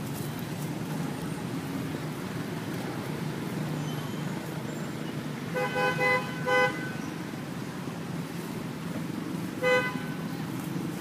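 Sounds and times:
vehicle horn toots: 0:05.5 - 0:07.0, 0:09.6 - 0:10.2.

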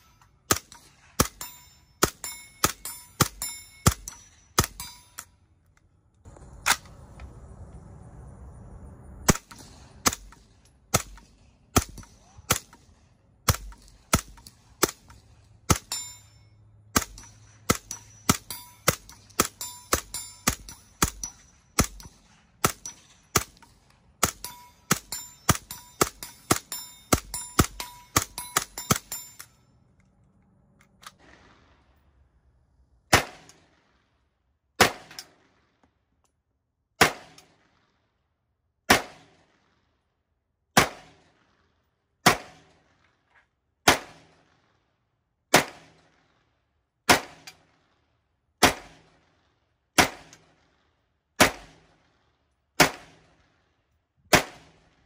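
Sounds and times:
metallic ring of steel targets: 0:00.0 - 0:05.5, 0:13.5 - 0:29.9
steady low noise: 0:06.2 - 0:11.6
suppressed gunshots: 0:09.2 - 0:16.0, 0:16.9 - 0:29.2, 0:31.0 - 0:32.1, 0:33.1 - 0:34.0, 0:34.8 - 0:35.8, 0:37.0 - 0:37.9, 0:38.9 - 0:39.8, 0:40.8 - 0:41.6, 0:42.2 - 0:43.1, 0:43.9 - 0:44.6, 0:45.5 - 0:46.2, 0:47.1 - 0:47.8, 0:48.6 - 0:49.3, 0:50.0 - 0:50.7, 0:51.4 - 0:52.2, 0:52.8 - 0:53.5, 0:54.3 - 0:55.0.

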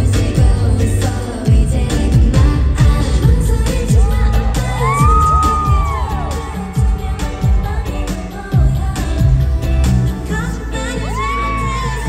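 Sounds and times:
female group vocals: 0:00.0 - 0:12.0
heavy kick drum beat: 0:01.5 - 0:09.8.

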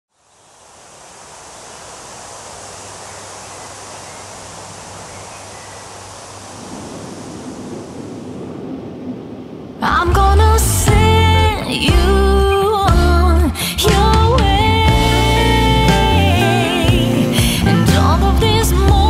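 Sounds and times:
steady rushing hiss: 0:00.1 - 0:19.0.

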